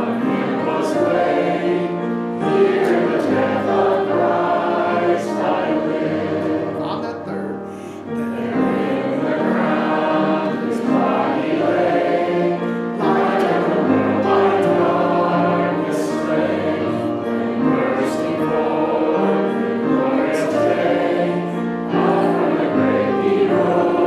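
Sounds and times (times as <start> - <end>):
congregation singing a hymn: 0.0 - 24.0.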